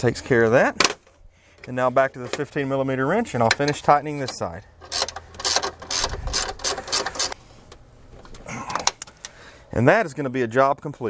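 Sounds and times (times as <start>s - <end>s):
ratcheting wrench clicking: 4.8s - 7.4s.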